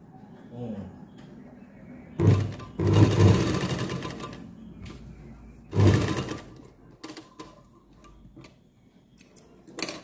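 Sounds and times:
sewing machine stitching: 0:02.2 - 0:04.4, 0:05.7 - 0:07.6.

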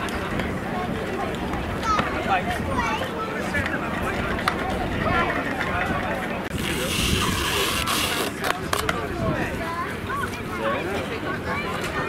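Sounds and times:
people chatting outdoors: 0:00.0 - 0:12.0
loud hiss: 0:06.6 - 0:08.3.

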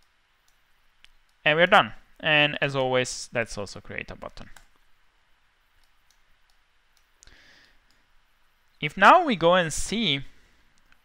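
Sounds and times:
computer mouse clicks: 0:00.0 - 0:01.4, 0:04.2 - 0:04.8, 0:05.8 - 0:08.1, 0:10.7 - 0:11.0
man talking: 0:01.4 - 0:04.6, 0:08.8 - 0:10.4.

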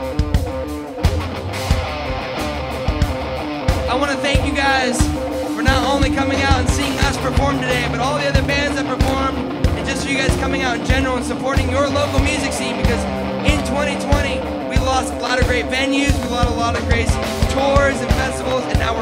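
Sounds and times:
bass and guitars: 0:00.0 - 0:19.0
drums: 0:00.0 - 0:19.0
person singing: 0:04.4 - 0:18.6.

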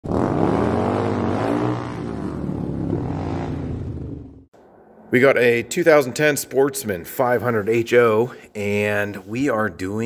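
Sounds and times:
engine revving: 0:00.0 - 0:04.5.

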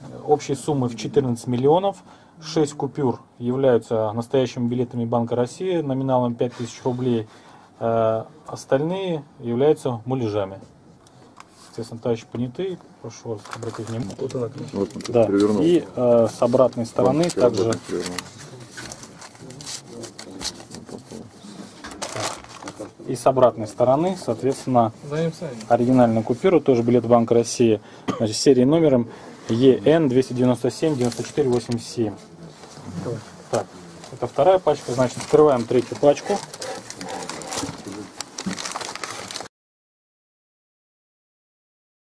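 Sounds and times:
paper banknotes rustling: 0:13.3 - 0:22.9, 0:30.9 - 0:31.8, 0:34.2 - 0:39.5
quiet voices murmuring: 0:13.6 - 0:23.1.

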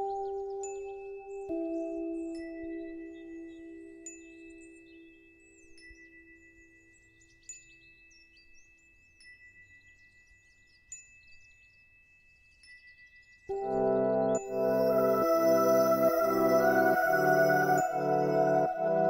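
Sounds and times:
soft chime-like music: 0:00.0 - 0:19.0.

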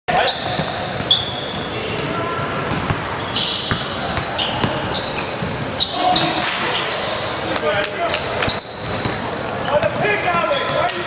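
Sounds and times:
sneakers squeaking on gym floor: 0:00.1 - 0:11.0
basketball bouncing: 0:02.7 - 0:05.7.

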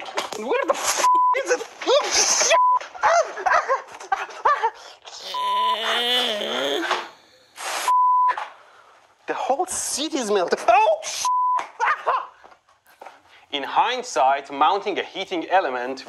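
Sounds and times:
man shouting in pain: 0:05.2 - 0:07.1
man wailing: 0:05.2 - 0:07.4
censor bleeps: 0:05.3 - 0:05.9, 0:07.9 - 0:08.4.

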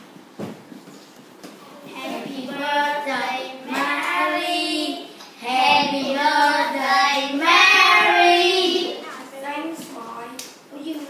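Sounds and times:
children singing: 0:01.9 - 0:09.0.

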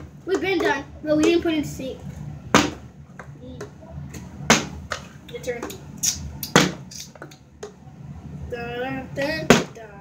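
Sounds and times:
plastic bottle hitting a hard floor: 0:02.5 - 0:02.8, 0:06.5 - 0:06.8.

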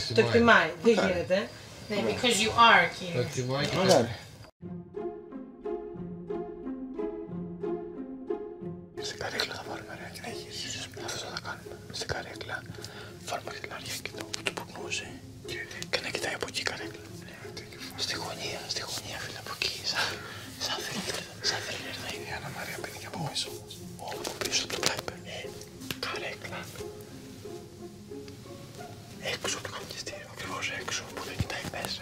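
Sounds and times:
soft background music: 0:00.0 - 0:32.0
people whispering: 0:09.0 - 0:26.8, 0:29.2 - 0:32.0.

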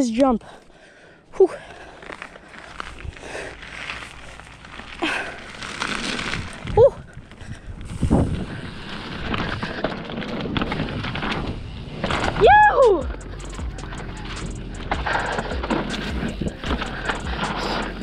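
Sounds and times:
bike tyre and wind noise: 0:00.4 - 0:18.0
bike thumps and rattles: 0:07.5 - 0:18.0
rider whooping: 0:12.4 - 0:18.0.

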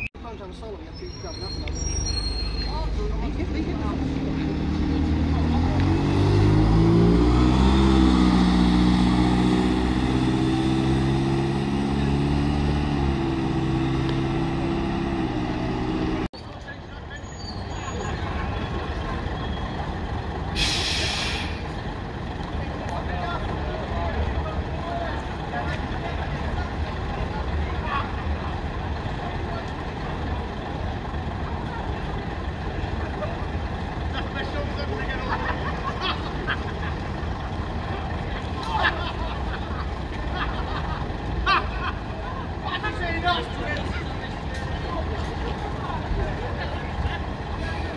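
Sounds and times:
diesel bus accelerating: 0:00.0 - 0:16.4, 0:17.2 - 0:47.9
buses idling: 0:00.9 - 0:16.3, 0:18.0 - 0:47.9
crowd chatter: 0:01.2 - 0:07.7, 0:21.4 - 0:47.9
air brakes hiss: 0:20.6 - 0:21.6.

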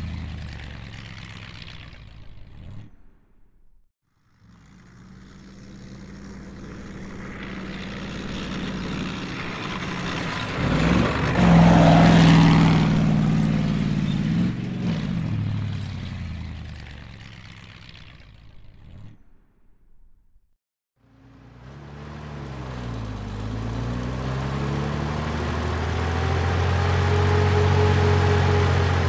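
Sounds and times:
heavy vehicle engine passing: 0:04.4 - 0:16.8, 0:21.2 - 0:29.0.

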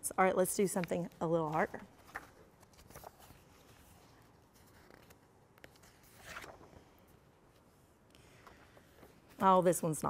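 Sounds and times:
paper pages turning: 0:00.6 - 0:09.6.

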